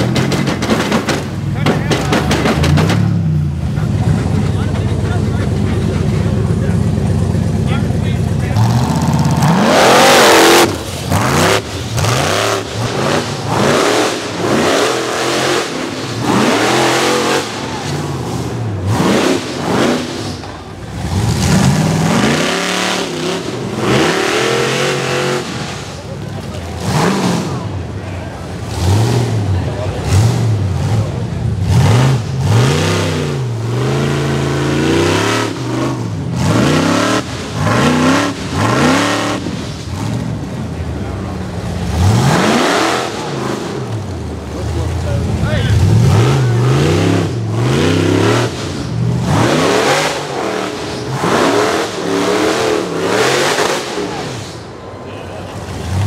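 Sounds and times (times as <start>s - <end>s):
buggy engine revving: 0.0s - 56.0s
tires spinning in dirt: 0.0s - 56.0s.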